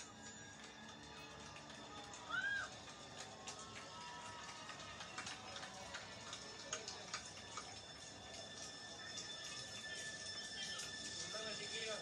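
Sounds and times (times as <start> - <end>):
faint held music tones: 0.0 - 12.0.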